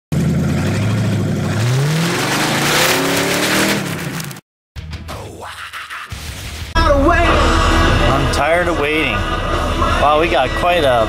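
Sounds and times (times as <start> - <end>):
car engine revving: 0.1 - 4.3.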